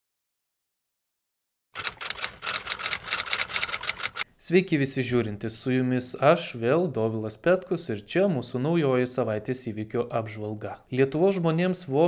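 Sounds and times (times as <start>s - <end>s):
sharp mechanical clicks: 1.8s - 4.2s.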